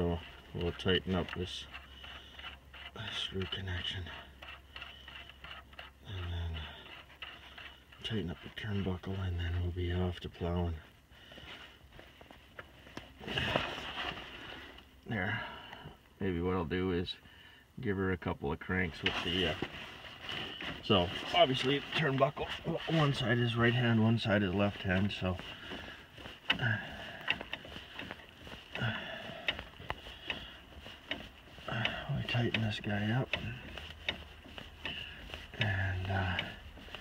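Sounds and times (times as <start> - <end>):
rustling: 0.0 - 15.0, 18.7 - 37.0.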